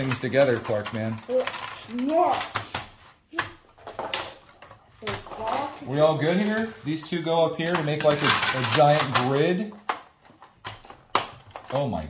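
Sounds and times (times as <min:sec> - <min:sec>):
plastic track pieces clicking together: 0:00.0 - 0:05.7, 0:07.4 - 0:12.0.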